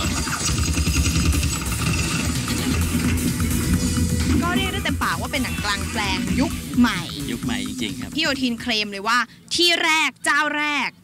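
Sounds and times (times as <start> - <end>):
music with deep bass: 0.0 - 9.2.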